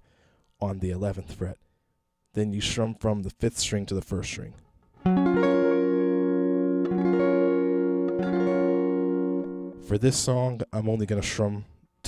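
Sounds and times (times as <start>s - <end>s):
electric guitar chord strummed: 5.0s - 9.9s.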